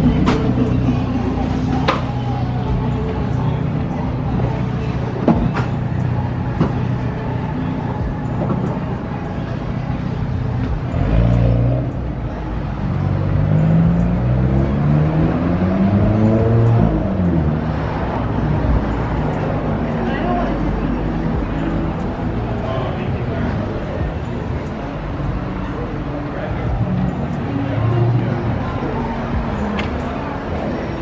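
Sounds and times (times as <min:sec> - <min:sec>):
street traffic: 0:00.0 - 0:31.0
vehicle engine passing by: 0:08.8 - 0:31.0.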